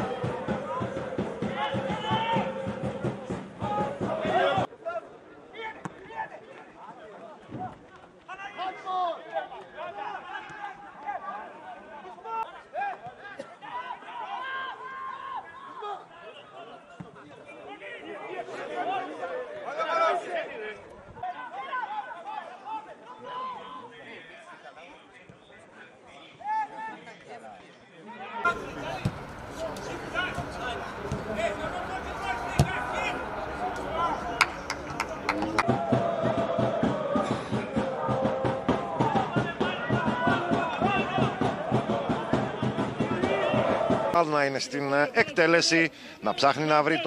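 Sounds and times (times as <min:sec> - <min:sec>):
voices calling and chattering: 0:28.4 - 0:35.7
music: 0:35.6 - 0:44.1.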